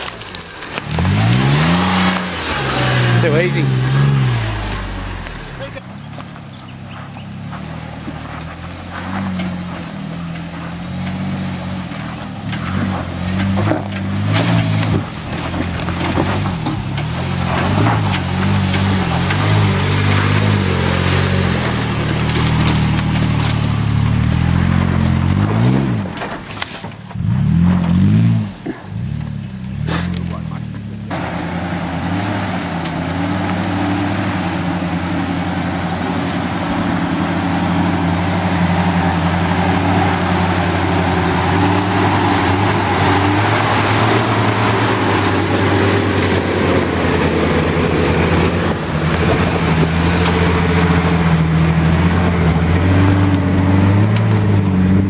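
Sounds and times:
off-road engine labouring: 0:00.0 - 0:55.0.

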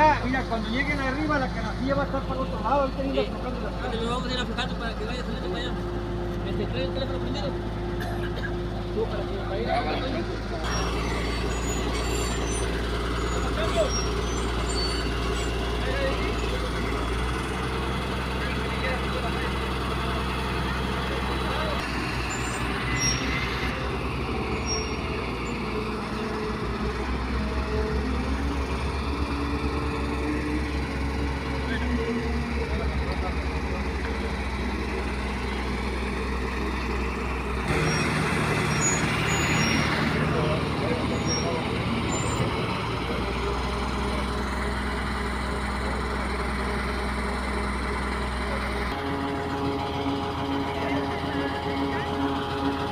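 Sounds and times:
truck engine running: 0:00.0 - 0:52.9.

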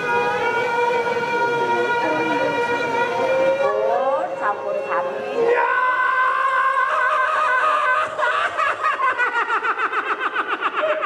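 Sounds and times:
fast cackling laugh: 0:06.6 - 0:11.0.

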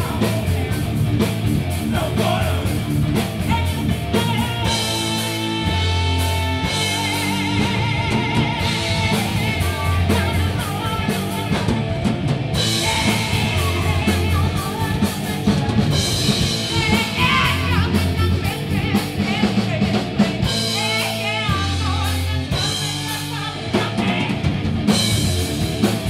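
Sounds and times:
drum kit: 0:00.0 - 0:26.0
electric guitar: 0:00.0 - 0:26.0
heavy bass notes: 0:00.0 - 0:26.0
woman singing: 0:03.5 - 0:12.0, 0:12.7 - 0:24.5.

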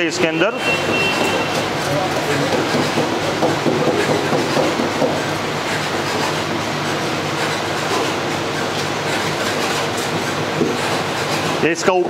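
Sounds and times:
cotton candy machine motor humming: 0:00.0 - 0:12.0.

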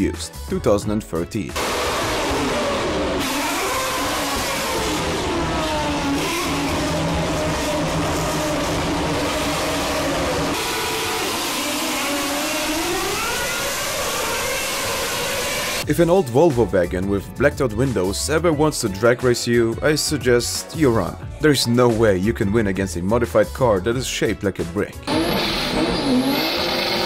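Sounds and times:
racing car engines at high revs: 0:01.6 - 0:15.8, 0:25.0 - 0:27.0.

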